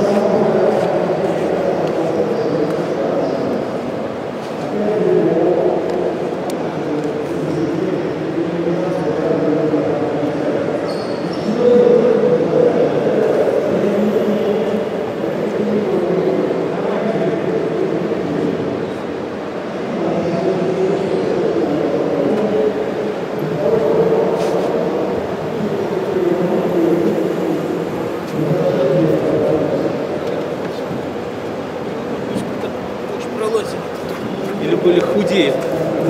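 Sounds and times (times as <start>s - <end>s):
chatter of many people: 0.0s - 36.0s.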